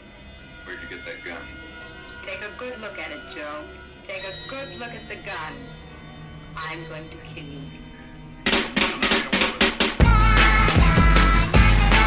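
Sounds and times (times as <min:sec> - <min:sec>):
drum fill: 0:08.5 - 0:12.0.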